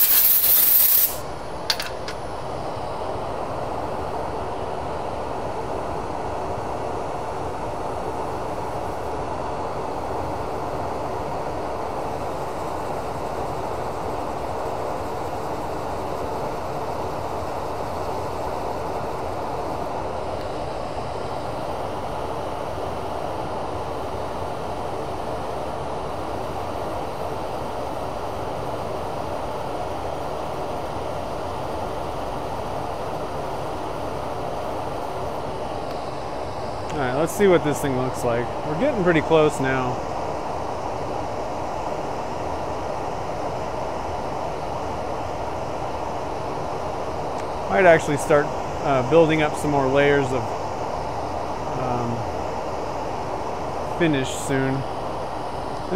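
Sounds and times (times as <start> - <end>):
sandpaper on spinning resin: 0.0 - 1.2.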